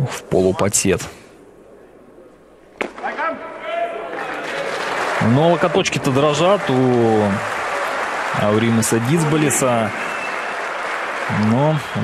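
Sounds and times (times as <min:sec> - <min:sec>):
crowd shouting and cheering: 0:02.8 - 0:12.0.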